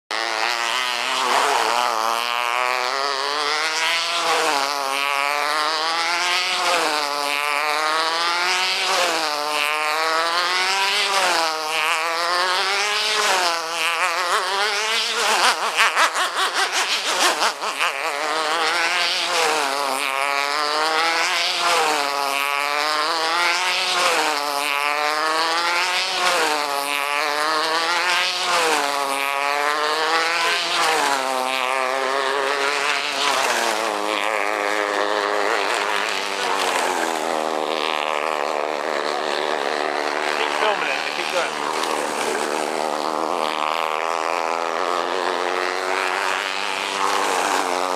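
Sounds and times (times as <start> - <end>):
model hydroplane engine rising and falling: 0.1 - 47.9.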